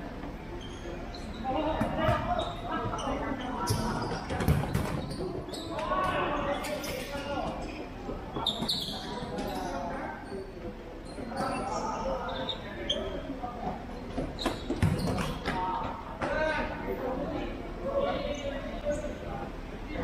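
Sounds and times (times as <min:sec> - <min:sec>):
shoes squeaking on court: 0:00.6 - 0:10.4, 0:11.0 - 0:15.9.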